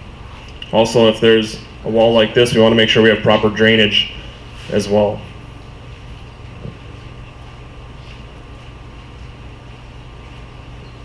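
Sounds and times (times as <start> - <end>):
ventilation hum and hiss: 0.0 - 11.0.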